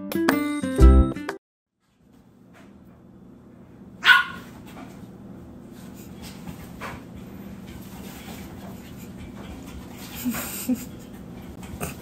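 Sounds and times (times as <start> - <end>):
dog barking: 4.0 - 4.5.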